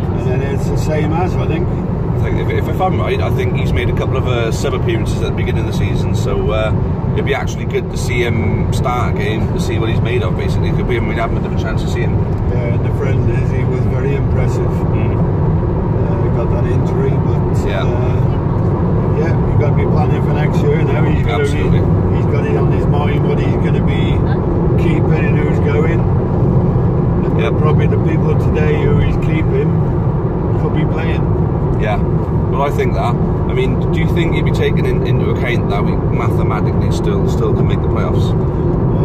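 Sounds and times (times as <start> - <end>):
people talking: 0.0 - 15.2, 16.0 - 18.4, 19.1 - 26.0, 27.2 - 29.8, 30.6 - 38.4
car road and engine noise: 0.0 - 39.0.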